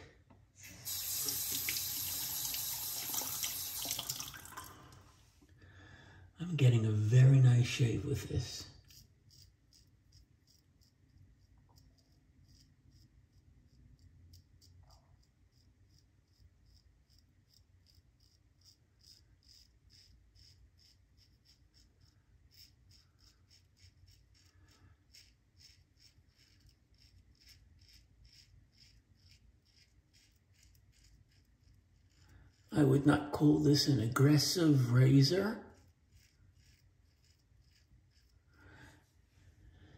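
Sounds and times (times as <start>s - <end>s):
razor scraping stubble: 8.7s - 38.6s.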